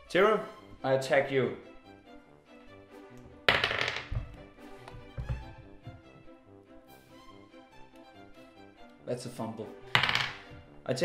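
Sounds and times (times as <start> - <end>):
soft background music: 0.0 - 11.0
die clattering on wooden table: 3.5 - 5.5, 10.0 - 10.7.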